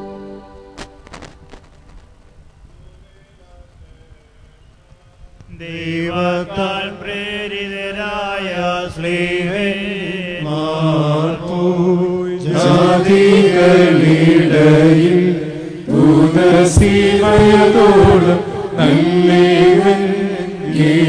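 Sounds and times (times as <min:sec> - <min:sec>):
liturgical chant: 0:05.5 - 0:21.0.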